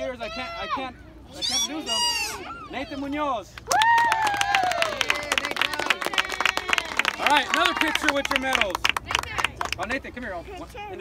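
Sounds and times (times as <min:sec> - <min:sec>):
people clapping: 0:03.5 - 0:10.0.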